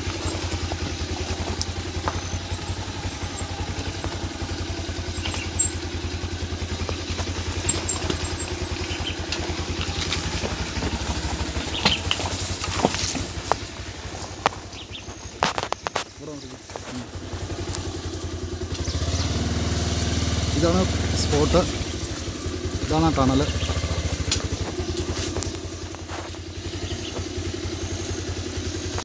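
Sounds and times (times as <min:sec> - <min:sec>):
knocks and rattles over stones: 0:00.0 - 0:17.9
motorcycle engine running: 0:00.0 - 0:29.0.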